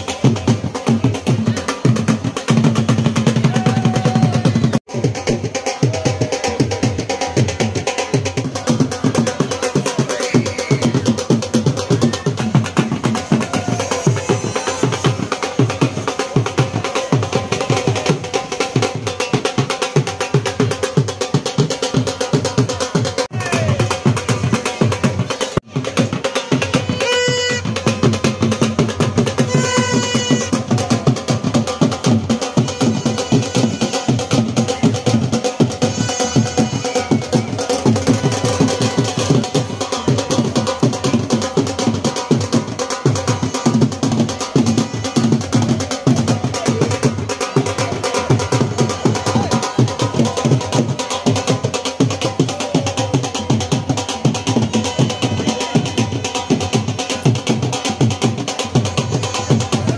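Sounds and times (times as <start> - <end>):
dhol drums beating fast: 0.0 - 59.9.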